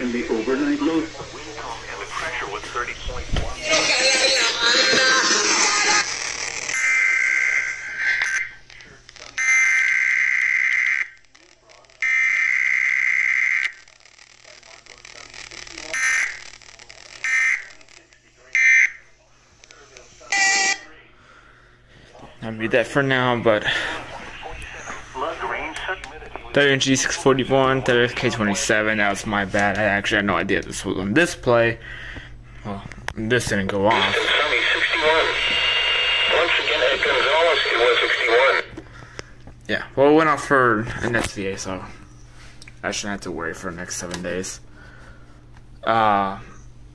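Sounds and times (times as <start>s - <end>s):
static hiss: 0.0s - 6.8s, 33.9s - 38.7s
warbling data tones from radio: 0.0s - 21.0s, 24.0s - 28.9s, 33.9s - 38.7s.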